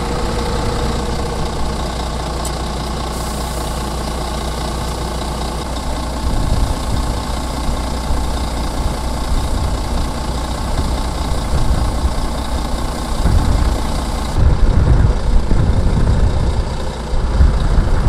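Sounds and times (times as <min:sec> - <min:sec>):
diesel truck engines rumbling: 0:00.0 - 0:18.0.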